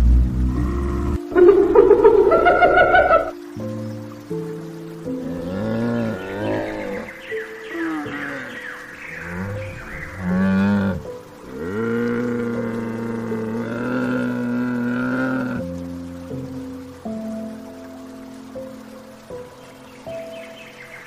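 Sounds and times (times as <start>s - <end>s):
camels moaning calls: 9.2s - 15.6s.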